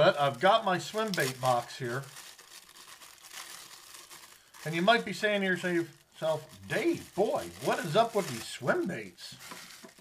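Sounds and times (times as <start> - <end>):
plastic bag crinkling: 0.0 - 10.0.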